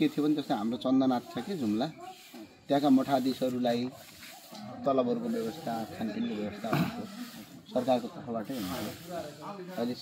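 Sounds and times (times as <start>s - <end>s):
man talking: 4.6s - 10.0s.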